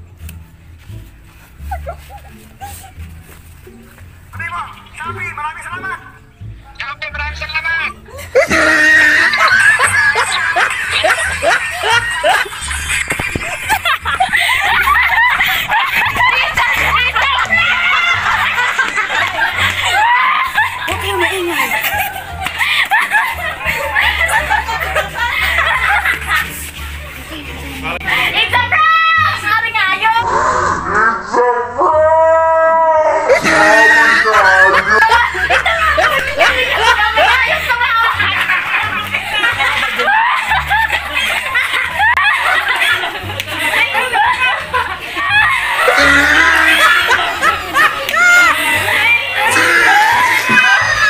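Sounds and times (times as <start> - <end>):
background music with bass: 0.0 - 32.2, 32.8 - 51.0
woman laughing hard: 1.6 - 3.0, 8.1 - 26.6, 33.3 - 51.0
people laughing: 1.6 - 3.4, 8.1 - 31.4, 33.0 - 51.0.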